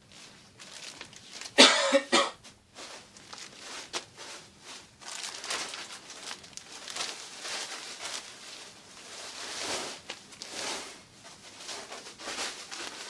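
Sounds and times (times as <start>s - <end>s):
plastic packaging rustling: 0.0s - 1.7s, 2.4s - 13.0s
person coughing: 1.6s - 2.4s.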